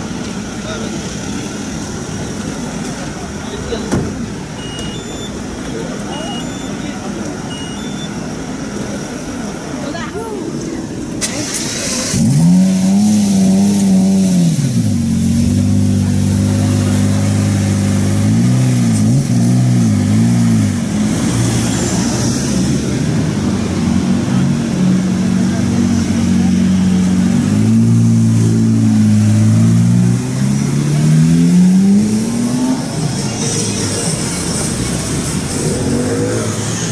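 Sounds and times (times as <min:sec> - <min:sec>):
crowd chatter: 0:00.0 - 0:36.9
car engine revving: 0:10.9 - 0:36.9.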